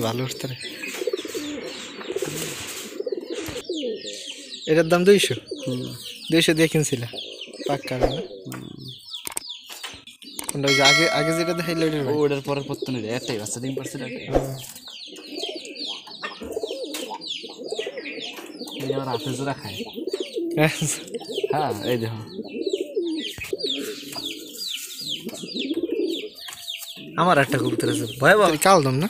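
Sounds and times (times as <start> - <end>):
pigeons cooing: 0.0 - 9.3, 10.2 - 29.0.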